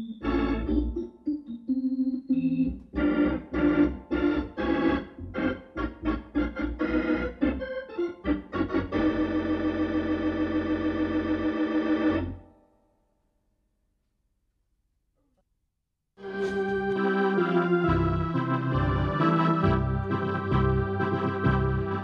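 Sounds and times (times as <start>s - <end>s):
electronic organ chords: 0.0s - 12.7s, 16.2s - 22.0s.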